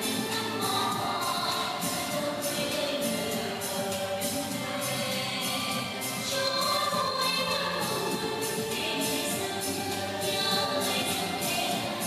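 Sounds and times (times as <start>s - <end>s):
song with singing over a beat: 0.0s - 12.0s.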